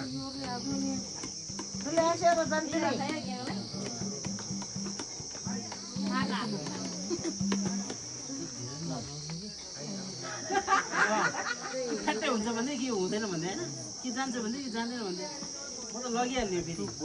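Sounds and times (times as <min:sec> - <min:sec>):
crickets chirping: 0:00.0 - 0:17.0
people chatting and laughing: 0:00.0 - 0:17.0.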